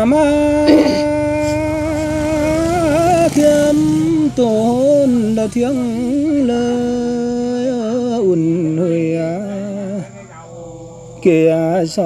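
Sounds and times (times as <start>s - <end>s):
person singing long note: 0.0s - 1.6s.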